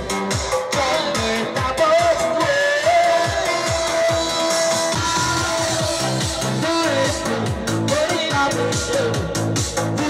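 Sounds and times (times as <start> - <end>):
dance music over loudspeakers: 0.0 - 10.0
steady kick drum: 0.0 - 10.0.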